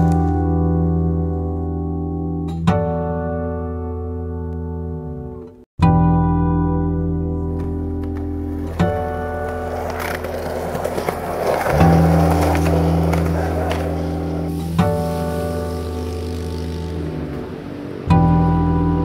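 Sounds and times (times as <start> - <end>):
skateboard wheels rolling on asphalt: 7.4 - 19.0
background music of sustained chords: 11.6 - 19.0.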